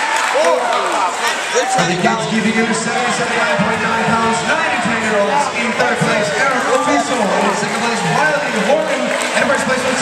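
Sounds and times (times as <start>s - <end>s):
crowd shouting and talking: 0.0s - 10.0s.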